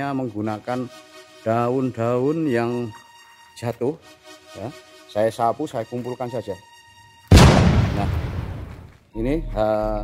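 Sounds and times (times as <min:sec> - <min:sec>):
loud boom: 0:07.3 - 0:08.9.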